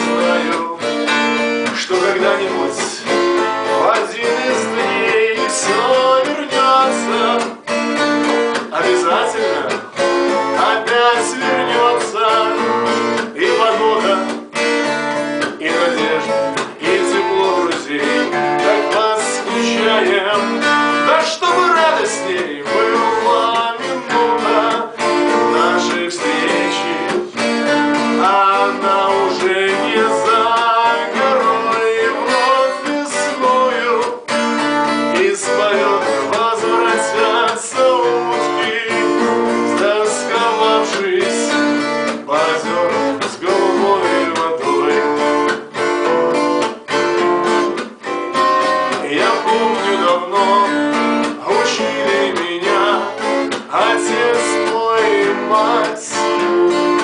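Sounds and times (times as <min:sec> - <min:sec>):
man singing: 0:00.0 - 0:57.0
strummed acoustic guitar: 0:00.0 - 0:57.0.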